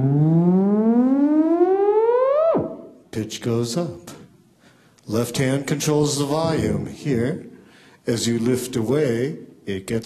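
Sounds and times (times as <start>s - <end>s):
theremin tone gliding upward: 0.0s - 3.0s.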